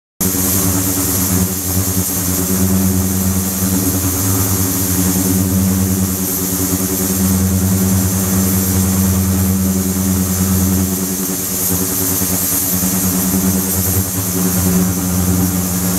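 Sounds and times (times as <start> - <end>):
ultrasonic cleaner humming: 0.2 - 15.9.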